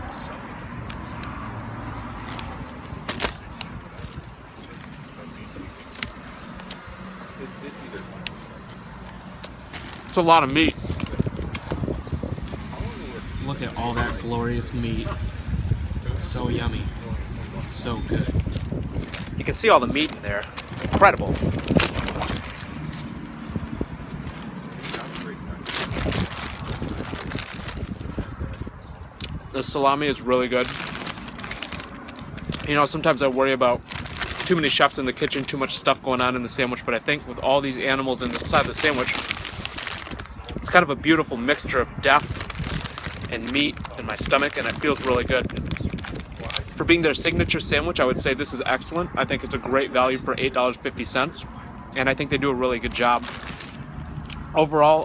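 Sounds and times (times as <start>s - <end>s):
low hum of road traffic: 0.0s - 55.0s
low outdoor rumble: 7.7s - 51.2s.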